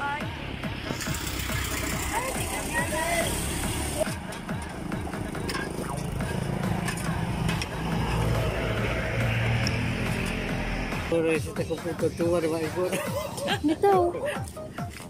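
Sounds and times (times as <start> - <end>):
background music with singing: 0.0 - 15.0
road traffic rumbling: 0.0 - 15.0
voices: 1.9 - 4.2.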